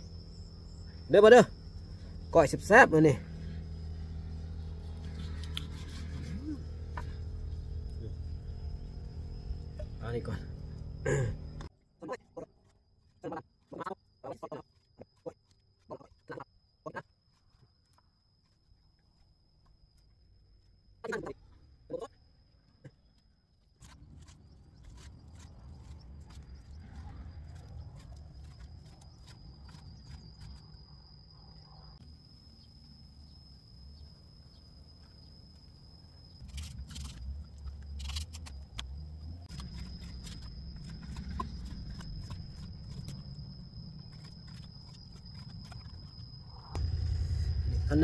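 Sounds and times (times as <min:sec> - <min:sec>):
low rumble: 0:46.5 - 0:48.0.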